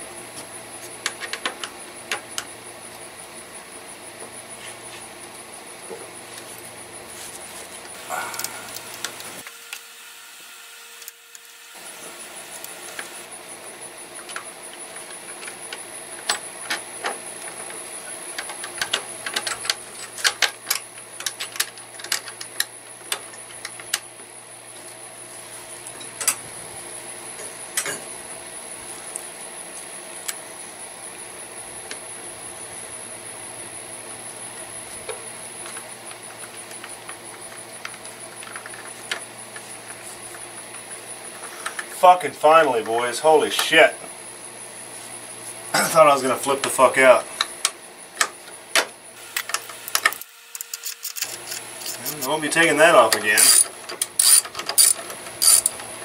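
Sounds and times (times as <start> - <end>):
thin high whine: 3.1 - 17.2, 49.0 - 55.8.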